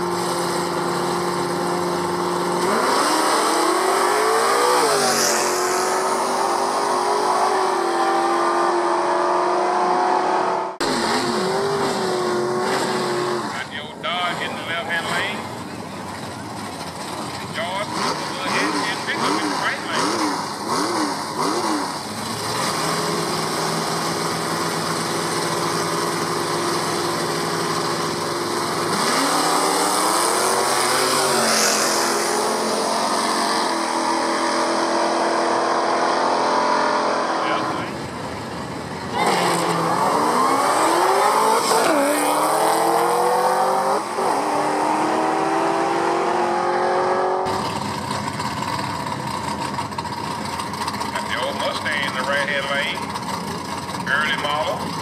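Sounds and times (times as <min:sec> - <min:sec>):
cars accelerating hard: 0:00.0 - 0:55.0.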